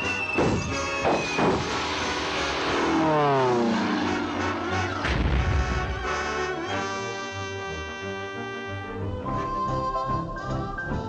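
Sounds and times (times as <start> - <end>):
cartoon falling whine: 0.0 - 6.8.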